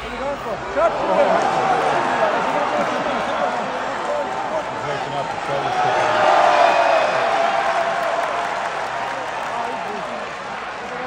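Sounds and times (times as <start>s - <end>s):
crowd cheering and applauding: 0.8s - 11.0s.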